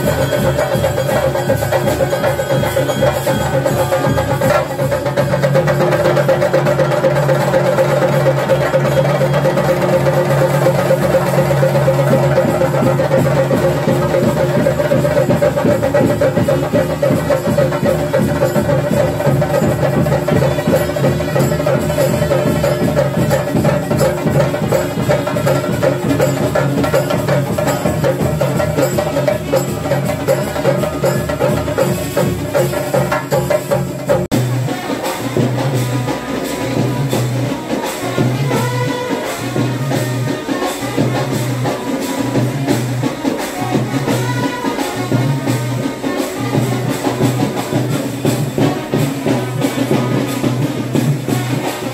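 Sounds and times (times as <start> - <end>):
drums played fast: 0.0 - 51.9
hand cymbals: 0.0 - 51.9.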